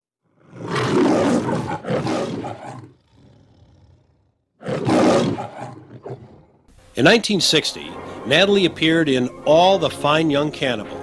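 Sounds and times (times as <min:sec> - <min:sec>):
lion roaring: 0:00.3 - 0:06.7.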